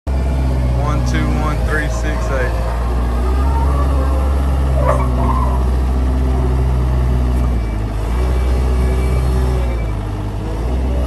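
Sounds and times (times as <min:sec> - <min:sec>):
diesel engine droning: 0:00.1 - 0:11.0
person's voice: 0:00.7 - 0:02.6.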